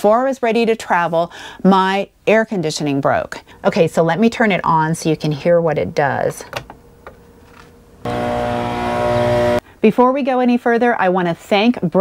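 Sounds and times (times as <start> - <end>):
air conditioner humming: 0.0 - 9.9.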